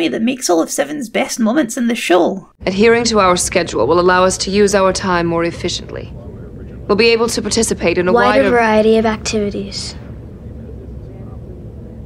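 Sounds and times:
low engine drone hum: 0:02.6 - 0:12.0.

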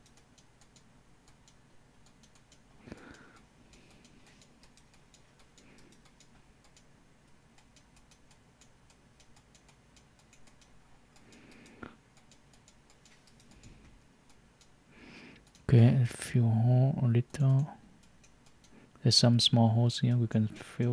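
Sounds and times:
light ticking: 0:00.0 - 0:20.9.

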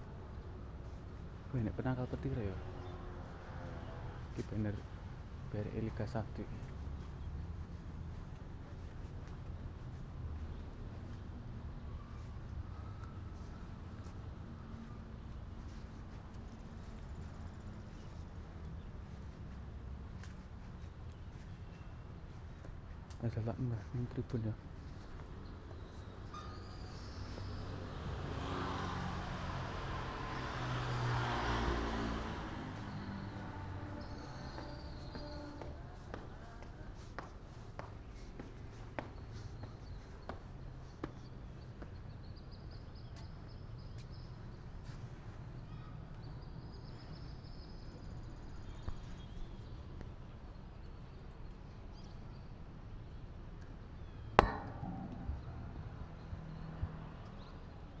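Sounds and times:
vehicle engine hum: 0:27.5 - 0:37.0
sharp ringing knock: 0:54.4 - 0:56.8
soft low thud: 0:54.4 - 0:56.8.

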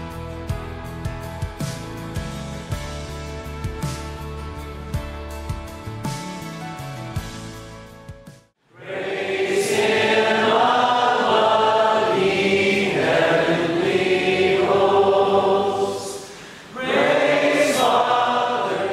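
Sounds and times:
group singing worship song: 0:08.7 - 0:18.9.

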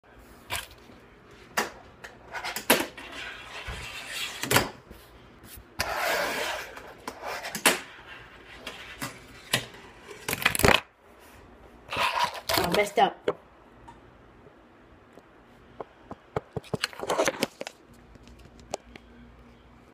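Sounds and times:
fingerboard wheels rolling: 0:02.1 - 0:04.8, 0:05.8 - 0:10.4.

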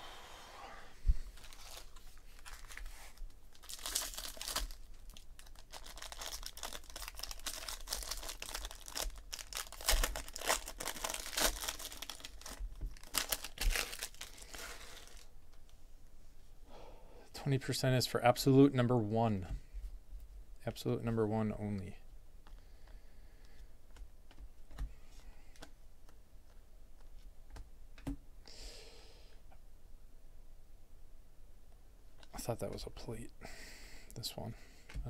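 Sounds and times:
foil wrapper tearing and crinkling: 0:01.4 - 0:15.3.

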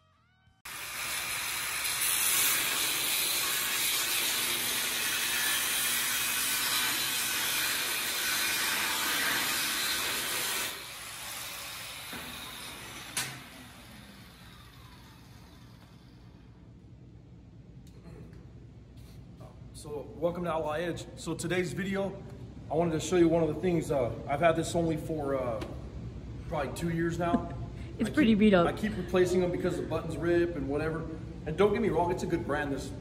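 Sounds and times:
angle grinder grinding steel: 0:00.7 - 0:16.2.

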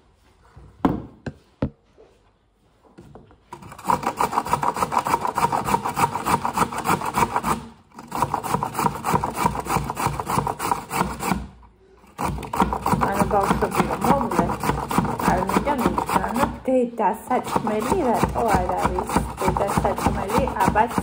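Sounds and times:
carrot grated on metal grater: 0:03.5 - 0:16.6, 0:17.2 - 0:21.0.

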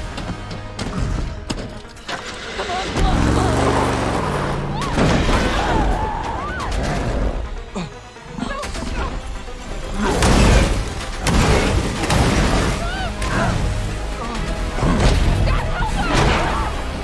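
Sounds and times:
film score music: 0:00.0 - 0:17.0
pickup truck engine revving: 0:03.1 - 0:04.8.

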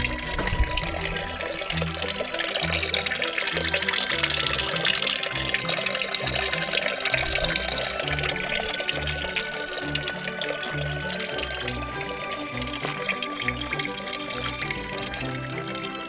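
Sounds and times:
water pouring into basin: 0:00.0 - 0:16.0.

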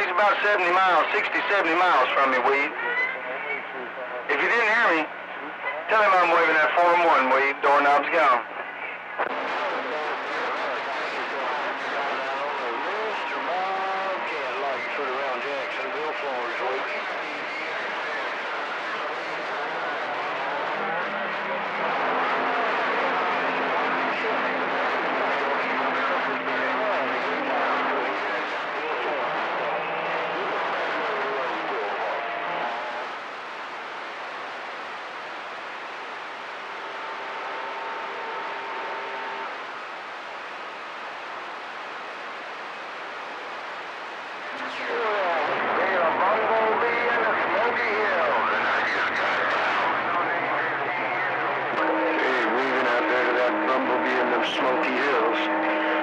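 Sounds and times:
garbled radio voices: 0:00.0 - 0:56.0
radio carrier tones: 0:00.0 - 0:56.0
radio static hiss: 0:00.0 - 0:56.0.

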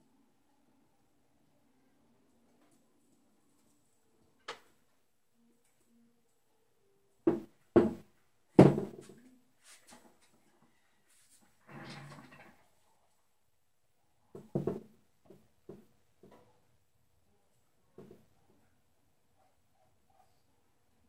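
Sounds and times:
canvas knocking on table: 0:07.3 - 0:08.0, 0:08.6 - 0:09.1, 0:14.4 - 0:15.9
soft scuffing: 0:09.0 - 0:10.1.

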